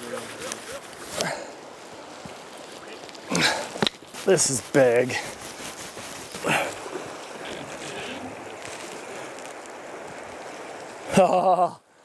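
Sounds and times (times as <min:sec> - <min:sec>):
river rushing over gravel: 0:00.0 - 0:12.0.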